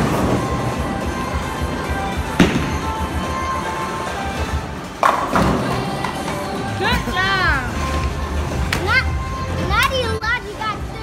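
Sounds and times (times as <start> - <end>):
background music: 0.0 - 11.0
bowling pins crashing: 2.3 - 3.4
thud: 2.4 - 3.0.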